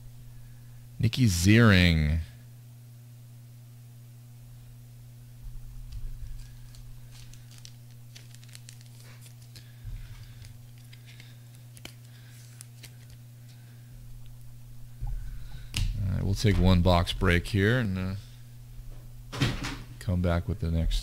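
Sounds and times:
low electrical hum: 0.0 - 21.0
trading cards clicking and rustling: 5.8 - 14.6.

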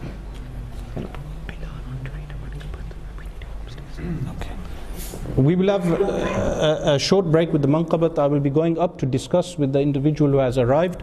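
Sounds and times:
man whispering: 0.6 - 4.9.

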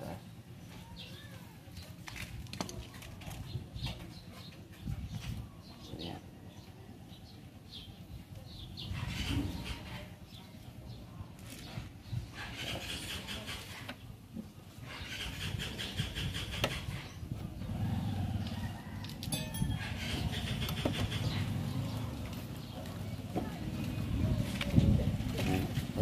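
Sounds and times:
high chirping bird calls: 19.3 - 22.8.

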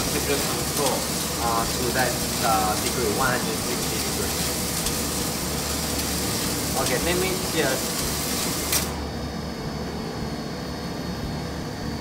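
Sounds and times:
coffee roaster humming and hissing: 0.0 - 12.0.

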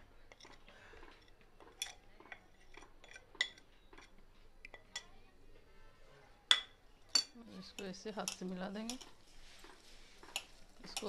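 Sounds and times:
wet squishing of kneading: 7.7 - 11.0.

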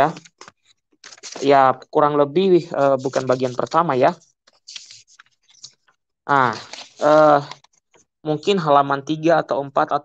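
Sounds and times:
paper rustle of pages: 0.0 - 1.7, 2.7 - 8.1.

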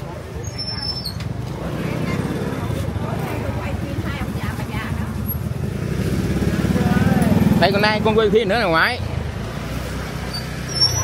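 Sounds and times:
faint market chatter: 0.0 - 11.0.

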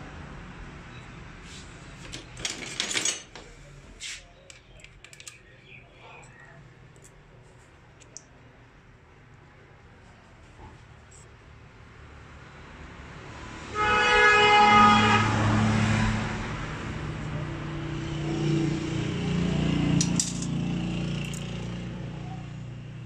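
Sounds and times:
vehicle horn blaring: 13.7 - 15.7
engine rumbling: 14.5 - 22.4.

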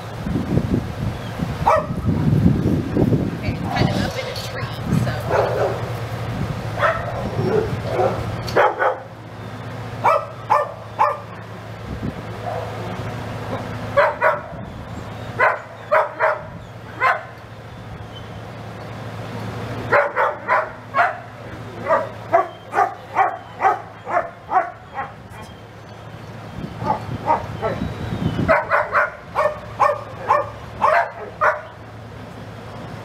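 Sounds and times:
dog barking in high yips: 1.6 - 2.1, 6.8 - 9.1, 10.0 - 11.3, 14.0 - 14.6, 15.4 - 17.4, 19.9 - 25.6, 26.8 - 27.8, 28.4 - 31.8.

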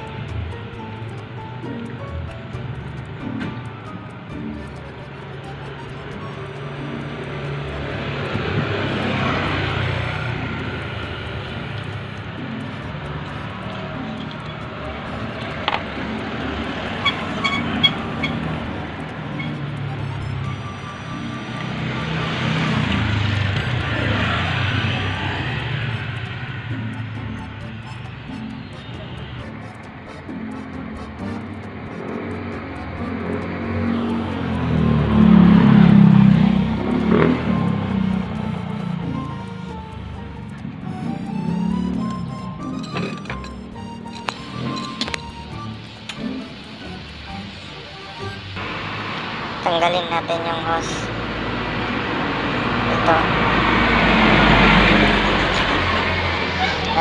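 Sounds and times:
background music: 0.0 - 57.0
vehicles passing by: 0.0 - 57.0.

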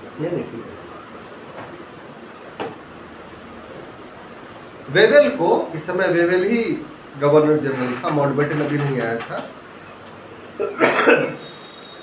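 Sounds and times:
man coughing: 10.6 - 11.4.

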